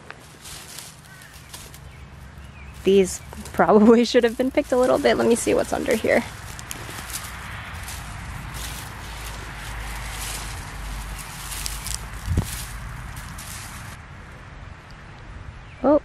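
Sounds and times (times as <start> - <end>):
hand scraping through dry soil: 0.0 - 14.0.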